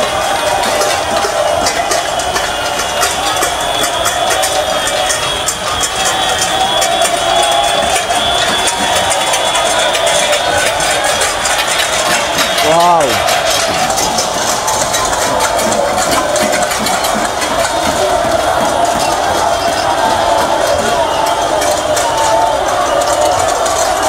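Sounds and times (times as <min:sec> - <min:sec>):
crowd shouting and chanting: 0:00.0 - 0:24.0.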